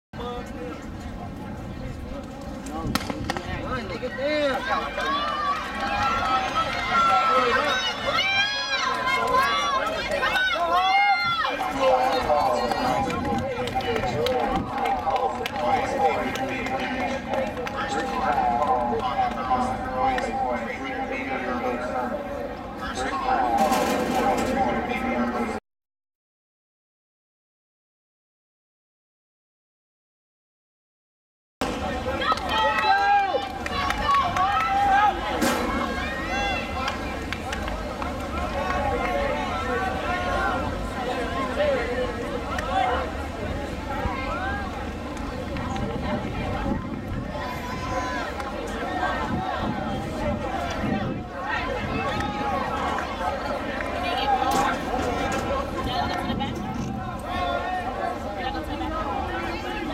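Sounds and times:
spectators shouting: 0:04.2 - 0:13.0, 0:31.6 - 0:59.9.

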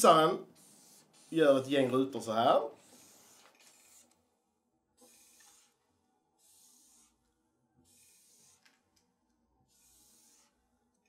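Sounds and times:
marker scratching on paper: 0:00.5 - 0:01.7, 0:02.8 - 0:04.2, 0:05.0 - 0:08.9, 0:09.6 - 0:10.7.

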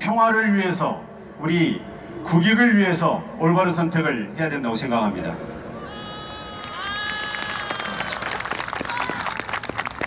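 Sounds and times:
audience applauding: 0:06.5 - 0:10.0.

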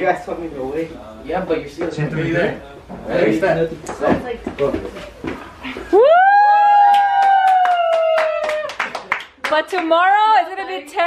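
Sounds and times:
woman whooping: 0:05.8 - 0:08.8
people clapping along: 0:06.6 - 0:11.0.

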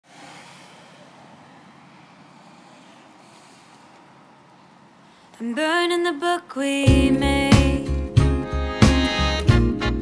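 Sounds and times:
hiss of road traffic: 0:00.0 - 0:05.4.

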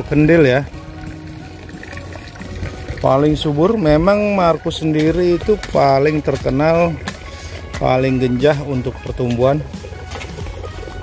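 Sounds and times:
soft background music: 0:00.0 - 0:11.0
speech: 0:07.8 - 0:09.6.

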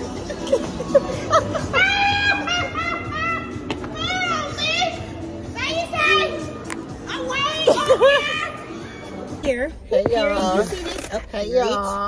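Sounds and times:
women laughing and squealing: 0:00.0 - 0:04.6, 0:07.3 - 0:08.9
music playing: 0:00.0 - 0:12.0.

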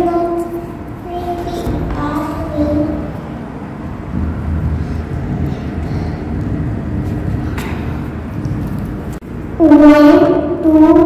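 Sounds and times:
low uneven rumble: 0:00.0 - 0:11.0.

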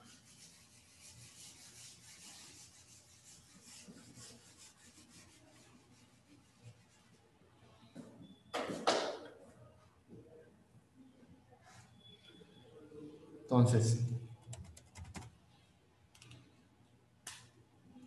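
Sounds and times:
eraser rubbing on whiteboard: 0:00.0 - 0:07.1.

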